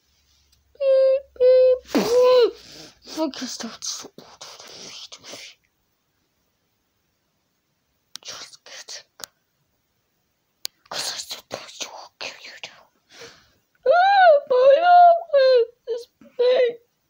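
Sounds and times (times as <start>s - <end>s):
breathy whispered noises: 3.0s - 5.6s, 8.2s - 9.3s, 10.8s - 12.9s.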